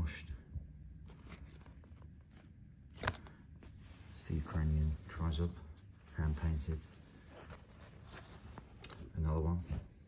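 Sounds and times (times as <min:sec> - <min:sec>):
fabric and card tag rustling: 0:01.0 - 0:09.3.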